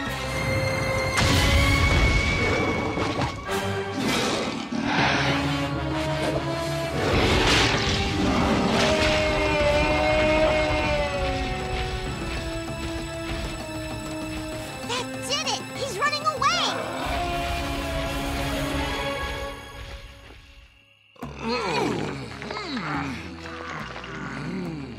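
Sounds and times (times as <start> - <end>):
dramatic orchestral music: 0.0 - 24.9.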